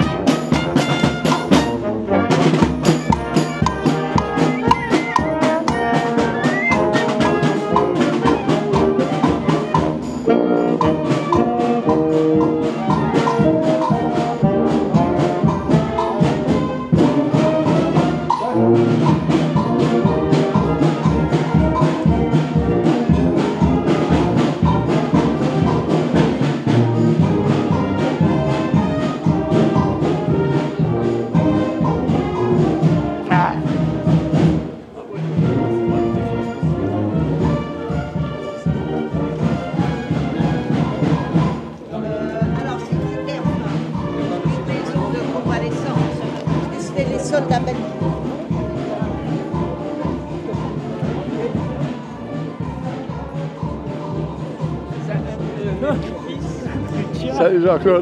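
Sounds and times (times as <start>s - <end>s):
marching band playing: 0.0s - 58.0s
marching drum beat: 0.0s - 58.0s.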